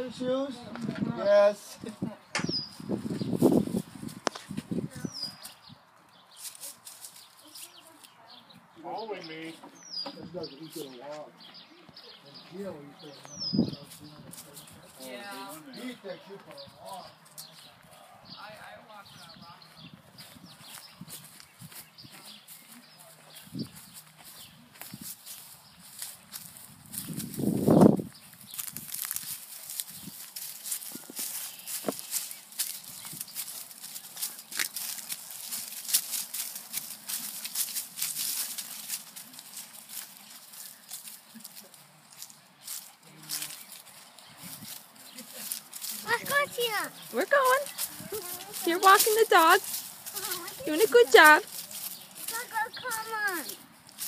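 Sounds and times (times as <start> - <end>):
footsteps through dry leaves: 2.6 - 8.3, 13.2 - 54.0.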